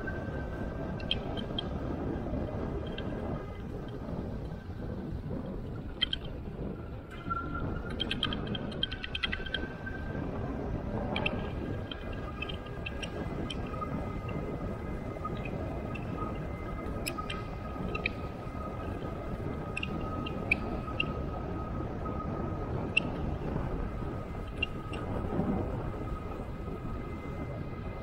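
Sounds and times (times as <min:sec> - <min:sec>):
wind and tyres rumbling: 0:00.0 - 0:28.0.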